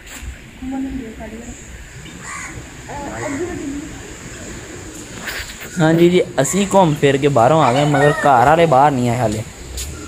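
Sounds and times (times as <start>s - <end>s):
low voices: 0.5s - 10.0s
harsh bird call: 2.0s - 5.0s.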